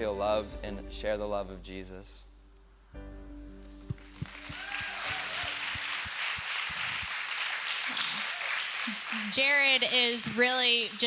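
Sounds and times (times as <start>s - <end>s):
audience applause: 4.0s - 11.0s.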